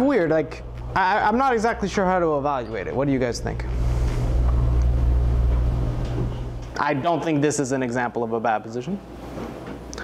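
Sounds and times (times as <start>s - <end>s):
low rumbling drone: 0.0s - 6.8s.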